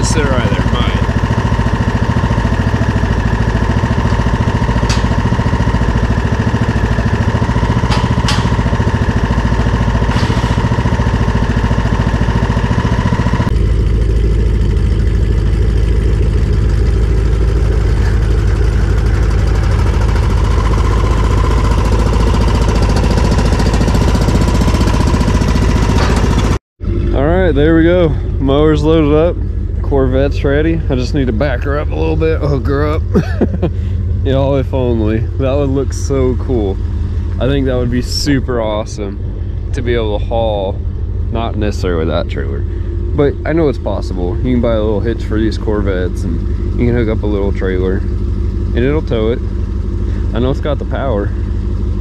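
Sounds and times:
riding lawn mower engine running: 0.0 - 52.0
thin steady whine: 26.9 - 52.0.

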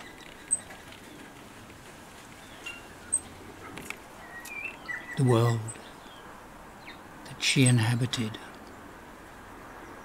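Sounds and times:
faint background hiss: 0.0 - 10.0
small birds chirping: 0.0 - 10.0.

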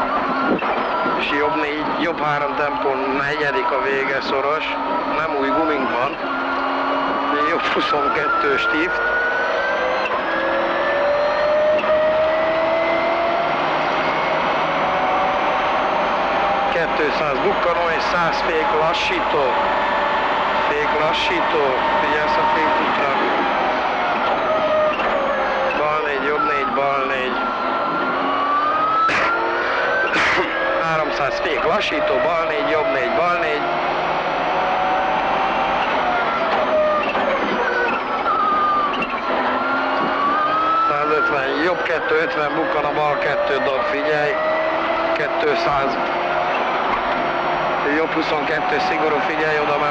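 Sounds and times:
car engine accelerating: 0.0 - 49.9.

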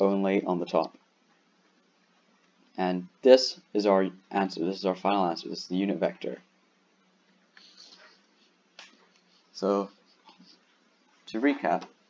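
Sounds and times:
stylus scratching on tablet screen: 7.6 - 11.7.

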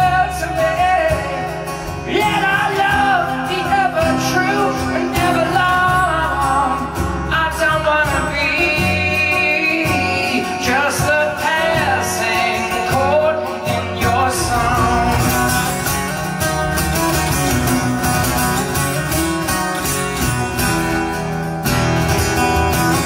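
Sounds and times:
acoustic guitar playing: 0.0 - 23.0
low accompaniment: 14.1 - 23.0.

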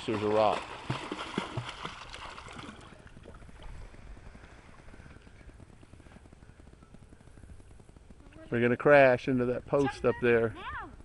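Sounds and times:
water lapping around hull: 0.0 - 6.3.

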